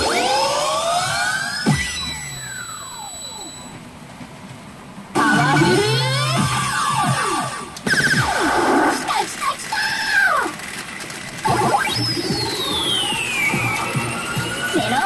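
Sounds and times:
electronic machine music and effects: 0.0 - 3.9, 5.1 - 9.1, 10.9 - 15.0.

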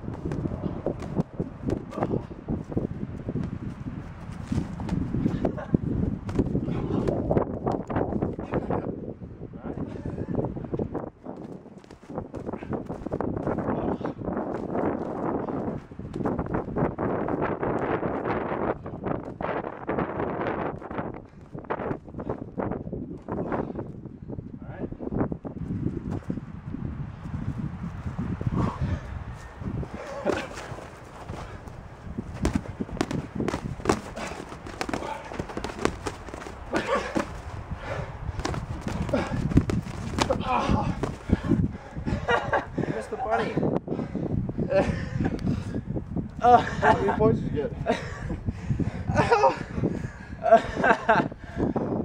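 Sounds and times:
boxing gloves smacking: 0.1 - 2.2, 6.3 - 7.9, 30.1 - 37.5, 38.4 - 41.4.

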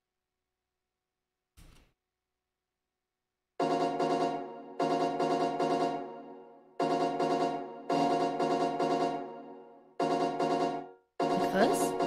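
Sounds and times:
synthesized keyboard chords: 3.6 - 12.0.

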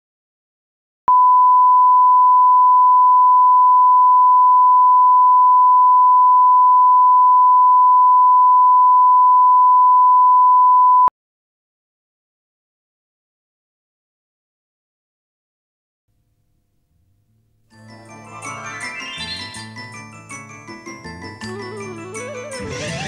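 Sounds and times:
pure sine test tone: 1.1 - 11.1.

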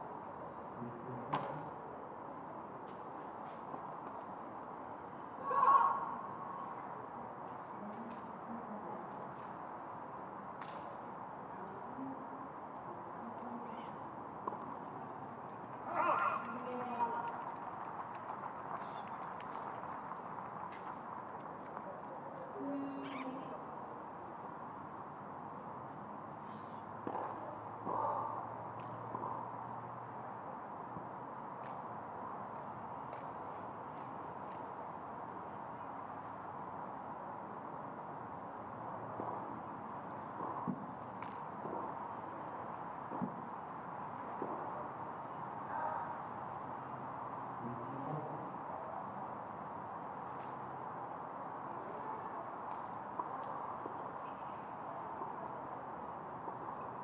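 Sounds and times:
outdoor background noise: 0.0 - 57.0
short calls: 22.8 - 23.6.

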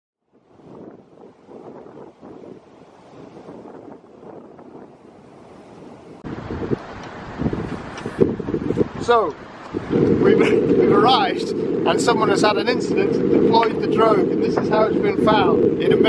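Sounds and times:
wind buffeting microphone: 0.2 - 16.0
waves breaking on beach: 0.4 - 16.0.

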